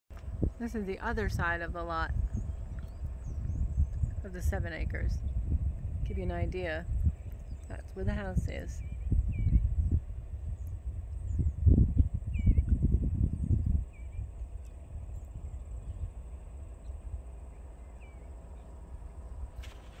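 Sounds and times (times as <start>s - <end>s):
wind buffeting microphone: 0.1s - 20.0s
faint bird chirps: 8.8s - 12.8s, 13.4s - 18.8s.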